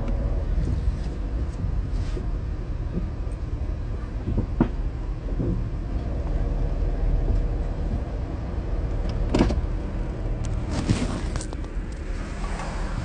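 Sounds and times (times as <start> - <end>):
car engine rumble: 0.0 - 13.0.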